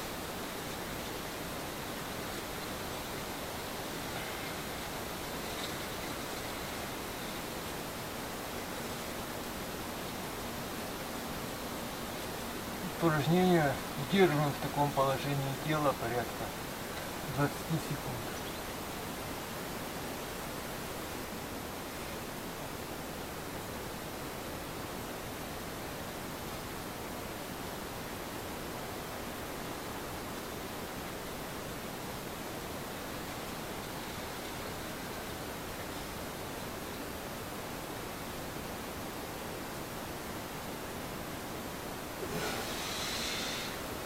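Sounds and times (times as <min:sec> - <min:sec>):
faint high whine: 0:00.0 - 0:44.0
steady background hiss: 0:00.0 - 0:44.0.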